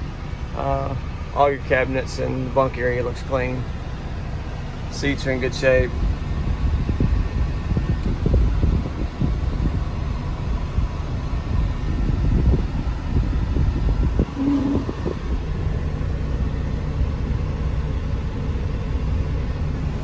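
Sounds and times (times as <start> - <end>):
diesel engine idling: 0.0 - 20.0.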